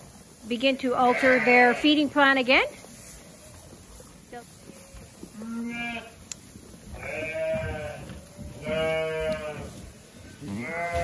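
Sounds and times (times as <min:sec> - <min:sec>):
sheep bleating: 0:01.0 - 0:02.0, 0:04.7 - 0:06.2, 0:06.9 - 0:11.0.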